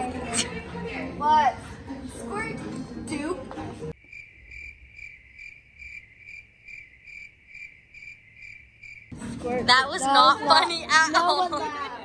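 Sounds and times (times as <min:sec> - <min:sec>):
cricket chirping: 0:04.0 - 0:09.1.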